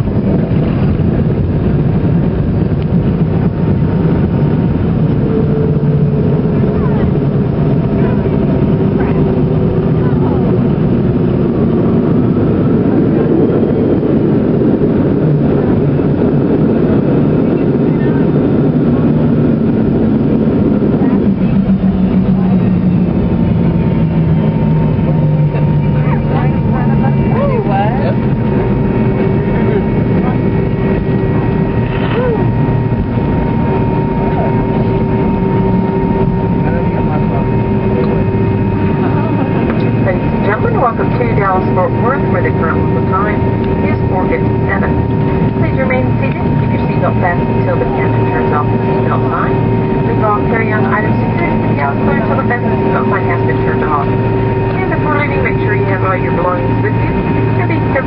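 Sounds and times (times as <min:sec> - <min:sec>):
airplane engines rumbling: 0:00.0 - 0:58.0
steady high whine: 0:00.0 - 0:58.0.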